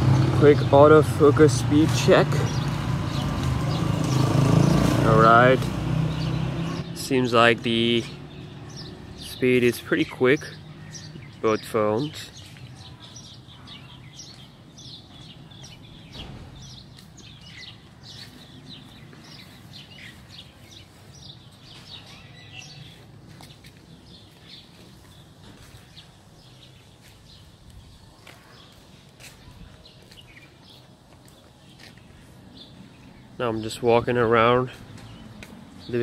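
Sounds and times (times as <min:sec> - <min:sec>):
small birds chirping: 0:00.0 - 0:36.0.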